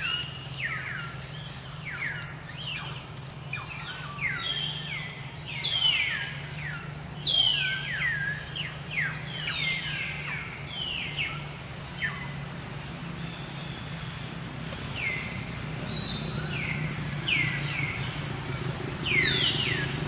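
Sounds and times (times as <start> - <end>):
birds chirping: 0.0 - 20.0
steady low hum: 0.0 - 20.0.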